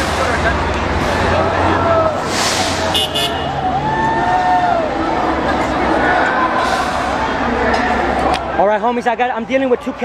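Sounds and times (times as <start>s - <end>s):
car passing: 0.0s - 8.4s
street noise: 0.0s - 10.0s.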